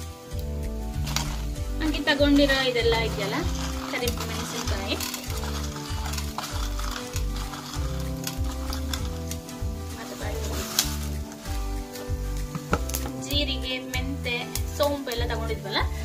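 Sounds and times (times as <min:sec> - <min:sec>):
background music with steady beat: 0:00.0 - 0:16.0
food sizzling in a pan: 0:00.0 - 0:16.0.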